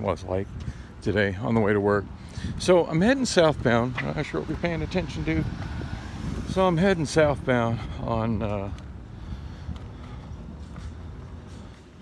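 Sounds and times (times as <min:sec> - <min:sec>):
low rumble of street noise: 0:00.0 - 0:12.0.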